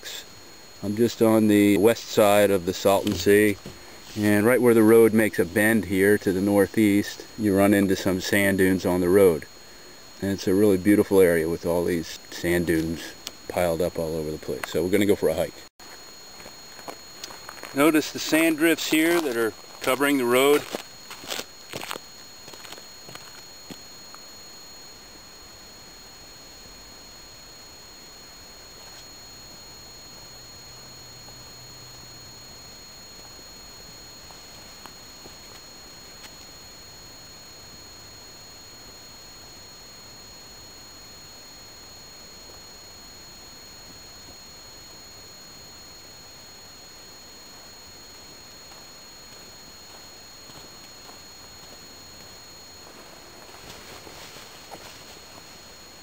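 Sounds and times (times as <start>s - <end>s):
faint hiss: 0.0s - 14.7s
high-pitched electronic whines: 0.0s - 56.0s.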